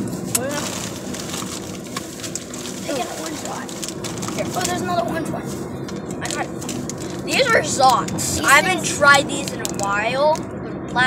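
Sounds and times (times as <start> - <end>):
car cabin road and engine noise: 0.0 - 11.0
boy murmuring: 0.4 - 0.8, 6.2 - 9.8.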